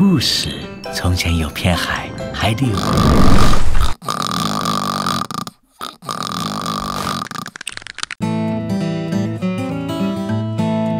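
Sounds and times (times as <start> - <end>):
cartoon snoring: 2.7 - 7.6.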